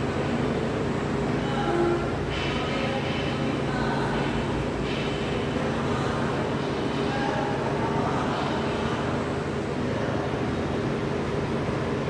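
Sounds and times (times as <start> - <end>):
low hum: 0.0 - 12.0.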